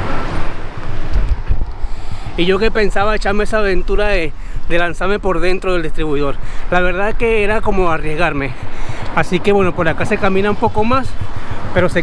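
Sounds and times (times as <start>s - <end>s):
highway traffic rushing: 0.0s - 12.0s
heavy low rumble: 7.0s - 12.0s.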